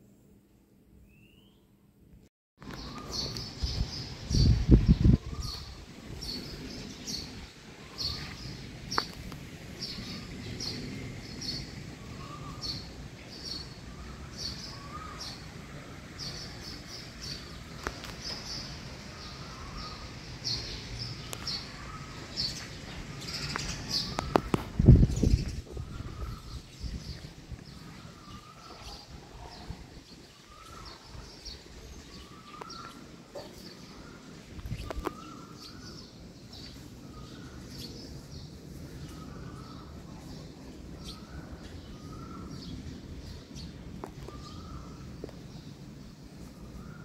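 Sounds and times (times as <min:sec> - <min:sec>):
small birds chirping: 0:02.6 - 0:47.0.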